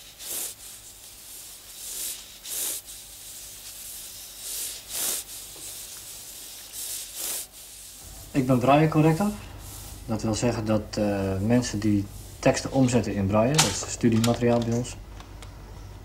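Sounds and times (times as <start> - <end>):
fingertips rubbing braille paper: 0.0 - 10.6.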